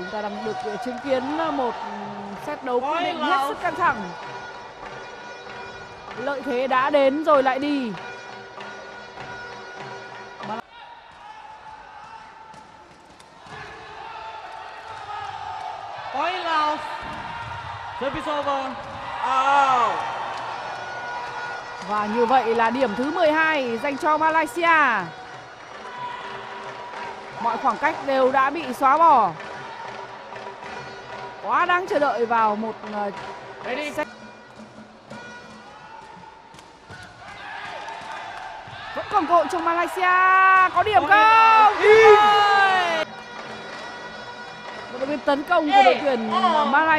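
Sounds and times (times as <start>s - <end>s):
crowd noise: 0.0s - 46.9s
loud shouts: 13.4s - 23.4s, 35.7s - 43.0s.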